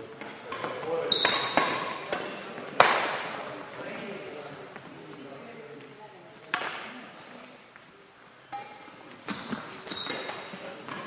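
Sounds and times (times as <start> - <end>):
faint voices murmuring: 0.0 - 11.0.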